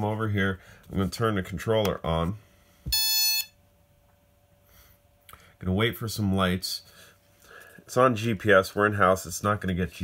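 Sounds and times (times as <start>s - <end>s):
short controller beep: 2.9s - 3.5s.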